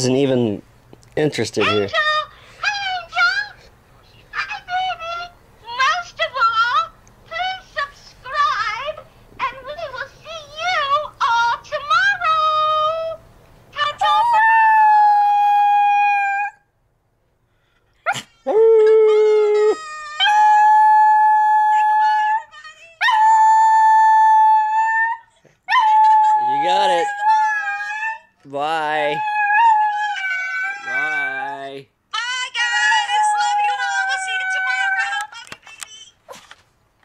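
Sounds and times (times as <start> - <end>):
small dog howling: 13.8 - 16.6, 18.1 - 35.2.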